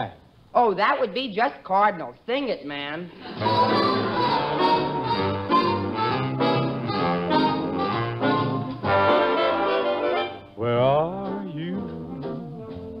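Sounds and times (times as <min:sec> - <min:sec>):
big band playing slow ballad: 0:03.4 - 0:13.0.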